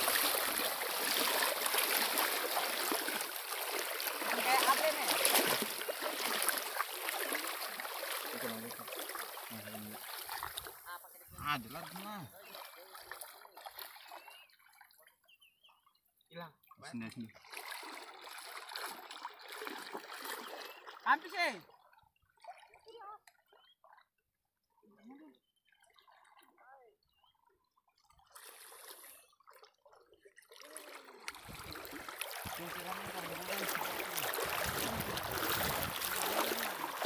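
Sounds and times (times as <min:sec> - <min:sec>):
sea water dripping and trickling: 0:00.0 - 0:11.2, 0:21.7 - 0:37.0
seawater sloshing around legs: 0:00.0 - 0:14.4, 0:17.4 - 0:21.0, 0:28.3 - 0:37.0.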